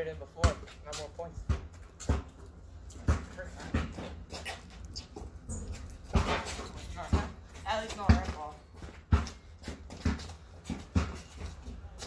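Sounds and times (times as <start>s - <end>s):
basketball bouncing on concrete: 0.4s - 12.0s.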